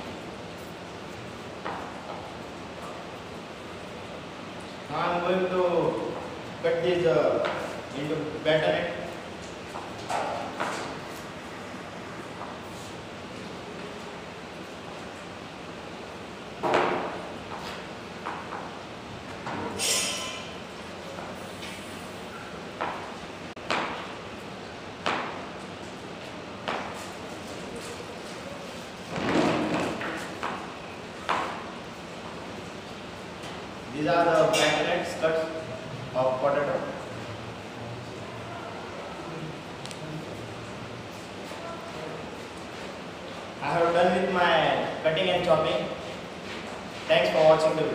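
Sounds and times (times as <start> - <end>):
steady background noise: 0.0 - 47.9.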